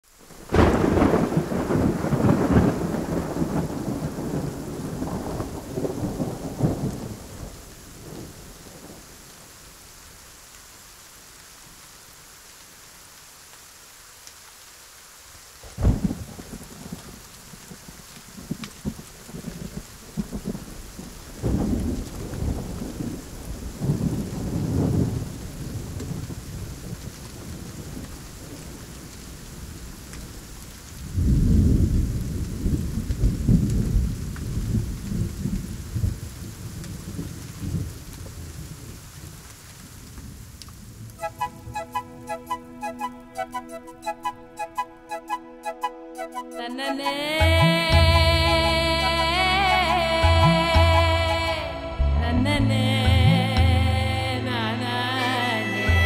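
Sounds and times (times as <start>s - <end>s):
rain hissing: 0.0s - 53.6s
thunder rolling: 0.3s - 9.0s, 15.7s - 30.5s, 31.1s - 39.0s
thunder crack: 0.4s - 9.0s, 15.7s - 17.2s, 18.4s - 28.8s.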